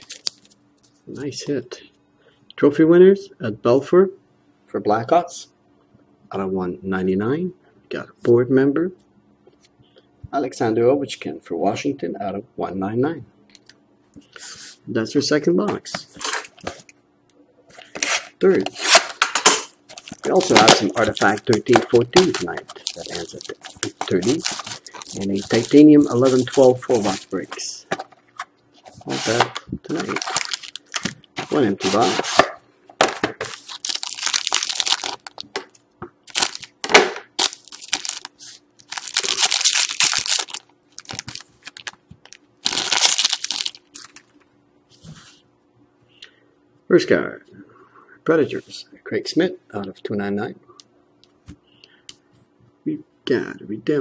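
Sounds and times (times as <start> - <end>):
foil wrapper crackling: 19.9 - 27.6, 29.3 - 32.0, 33.5 - 36.8, 37.4 - 44.4.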